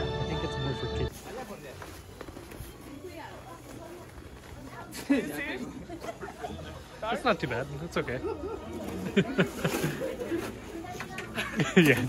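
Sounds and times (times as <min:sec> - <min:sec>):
faint voices talking: 0:00.0 - 0:12.0.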